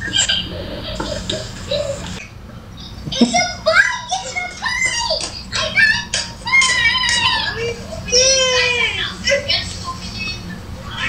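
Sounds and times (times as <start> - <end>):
steady low hum: 0.0 - 11.0
voices through a phone speaker: 2.8 - 11.0.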